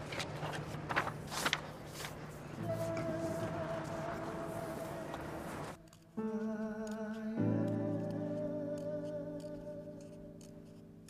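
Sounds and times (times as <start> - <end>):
paper posters rustling: 0.0 - 5.8.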